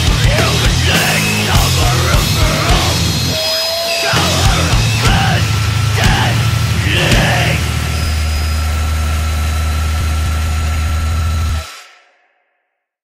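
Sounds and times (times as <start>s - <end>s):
distorted guitar and bass chord: 0.0s - 11.7s
feedback tone: 0.0s - 11.7s.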